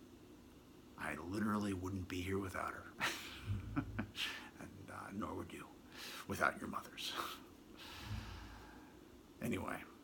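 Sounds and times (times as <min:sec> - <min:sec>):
man's nasal exhale: 0:07.8 - 0:09.0.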